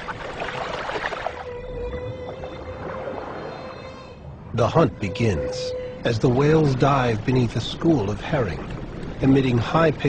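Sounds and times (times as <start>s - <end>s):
steady underwater hum: 0.0s - 10.0s
humpback whale calls: 1.4s - 9.0s.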